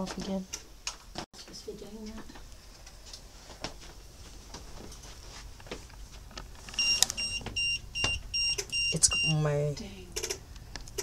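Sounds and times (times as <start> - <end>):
high-pitched electronic beeps: 6.8 - 9.5.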